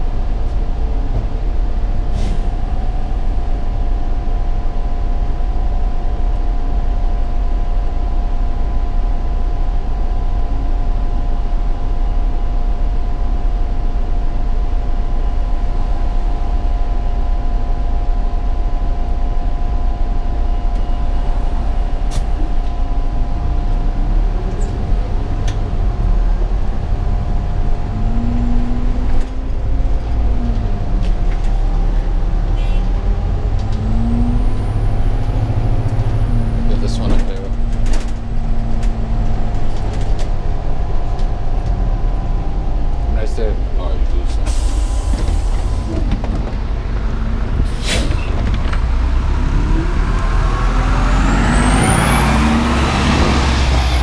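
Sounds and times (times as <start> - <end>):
bus engine rumble: 0.0 - 54.0
rattles and clicks: 37.0 - 40.4
air hiss: 44.4 - 45.7, 47.6 - 48.2.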